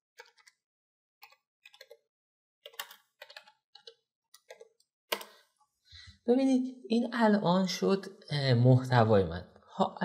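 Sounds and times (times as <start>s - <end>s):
computer keyboard keystrokes: 1.2s - 2.0s, 2.6s - 5.3s.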